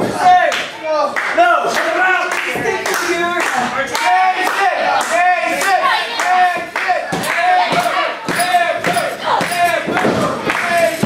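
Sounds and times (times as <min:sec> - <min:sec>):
hands clapping in rhythm: 0:00.4 - 0:11.0
voices shouting: 0:04.0 - 0:11.0.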